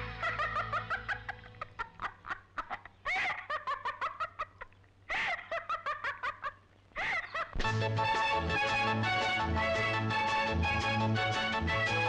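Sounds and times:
woman laughing: 0.1 - 7.6.

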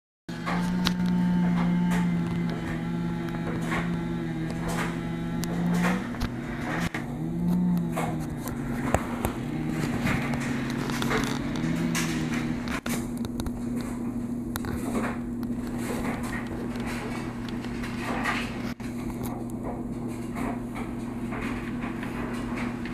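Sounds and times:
chainsaw cutting tree: 0.3 - 12.9.

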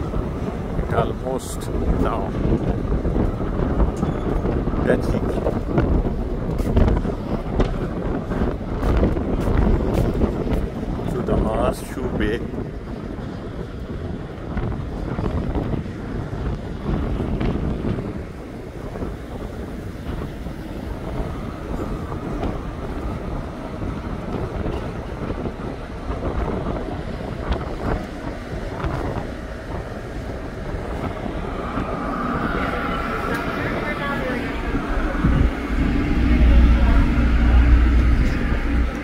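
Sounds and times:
ship engines rumbling: 0.0 - 39.0
wind buffeting microphone: 0.0 - 39.0.

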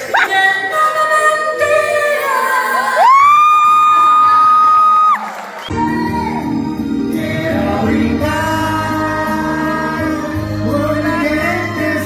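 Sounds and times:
woman singing into microphone: 0.0 - 3.8
full band music: 5.6 - 12.0.

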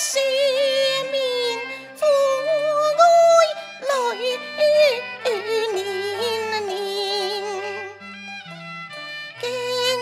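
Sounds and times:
opera duet singing: 0.0 - 8.0, 9.4 - 10.0
instrumental accompaniment: 0.0 - 10.0.

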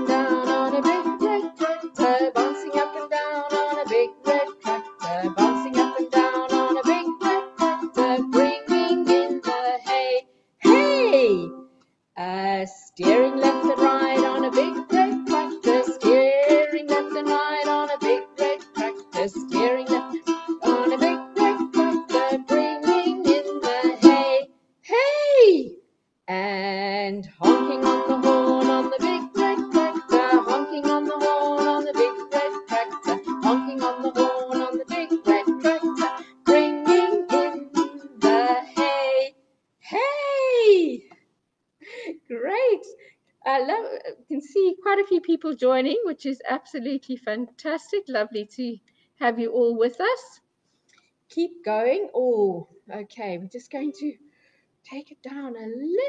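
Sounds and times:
ukulele strumming: 0.0 - 10.0, 10.6 - 11.6, 13.0 - 24.4, 27.4 - 39.2
woman singing: 0.0 - 11.6, 12.2 - 41.0.

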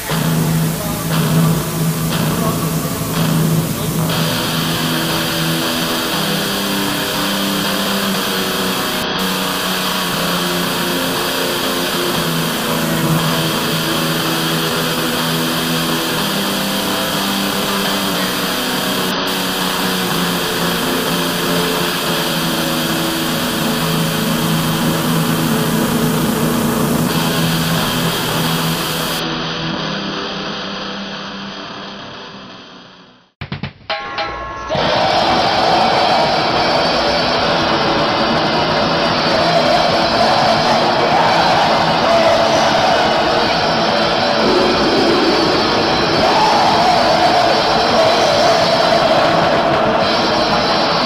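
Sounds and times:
droning low hum: 0.0 - 29.2, 37.0 - 48.2
harsh distorted noise: 0.0 - 33.9, 34.6 - 51.0.

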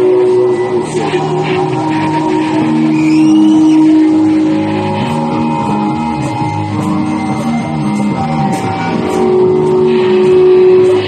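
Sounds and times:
distorted electric guitar: 0.0 - 11.0
electric bass: 0.0 - 11.0
heavy metal band playing: 0.0 - 11.0.

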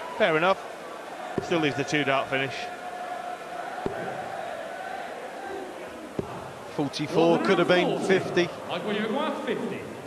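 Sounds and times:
murmur of arena crowd: 0.0 - 10.0.

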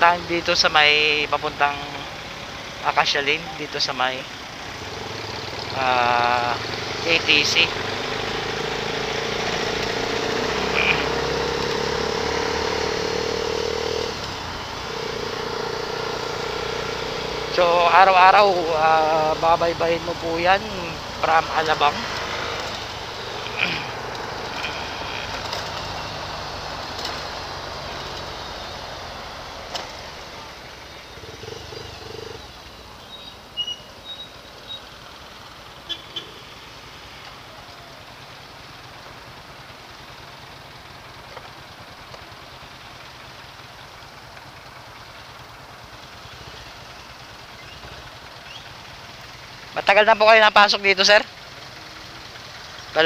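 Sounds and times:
idling traffic hum: 0.0 - 53.0
motorcycle engine and wind: 4.4 - 34.4.

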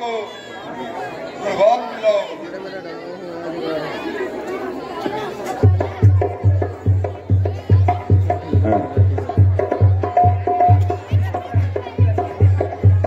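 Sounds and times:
people talking: 0.0 - 13.0
low drum beating: 5.6 - 13.0.

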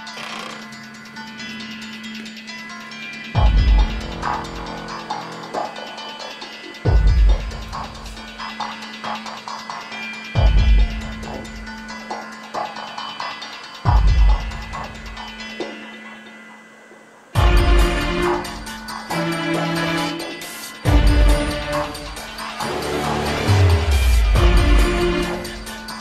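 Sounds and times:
humming drone: 0.2 - 9.8.

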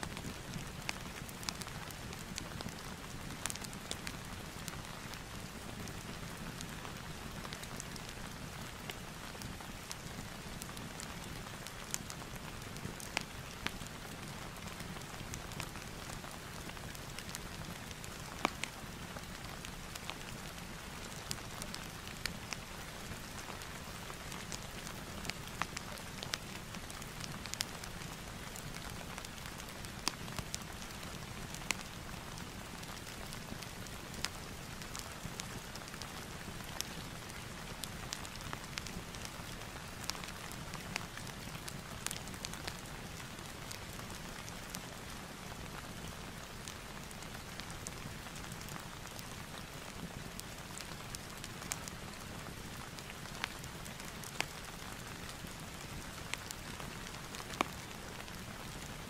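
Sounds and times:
steady rain falling: 0.0 - 59.0
fireplace crackling: 0.2 - 58.8.

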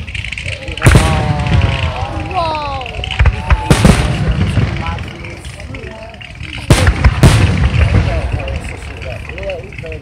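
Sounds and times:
firework bursting with loud bang: 0.0 - 9.4
fireworks booming and crackling: 0.0 - 10.0
spectators calling out: 0.2 - 8.8.

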